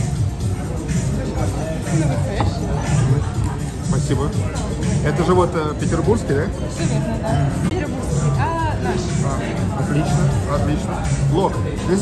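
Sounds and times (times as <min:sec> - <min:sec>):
background music: 0:00.0 - 0:12.0
chatter of voices: 0:00.0 - 0:12.0.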